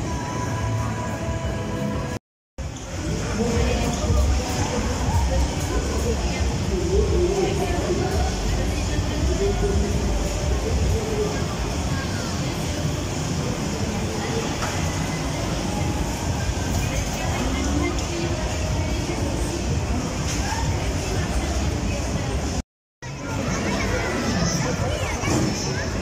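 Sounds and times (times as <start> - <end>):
voices: 2.7 - 26.0.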